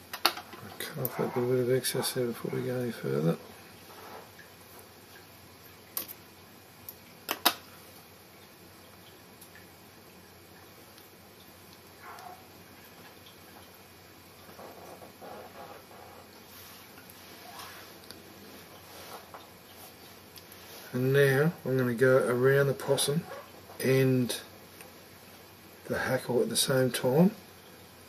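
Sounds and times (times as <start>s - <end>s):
faint handling sounds: 14.5s - 21.1s.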